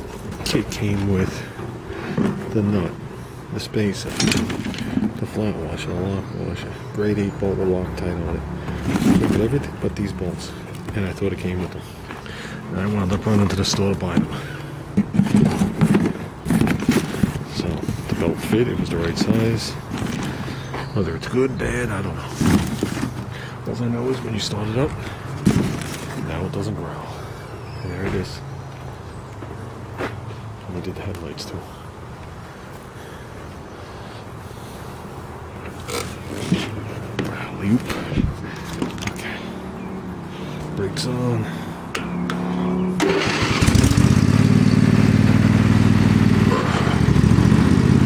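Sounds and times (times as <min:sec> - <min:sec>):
handling knock and rustle: 0:04.0 - 0:05.4, 0:08.7 - 0:09.6, 0:13.3 - 0:20.5, 0:22.2 - 0:23.4, 0:25.4 - 0:26.3, 0:35.6 - 0:39.3
mower engine idling: 0:41.5 - 0:48.0.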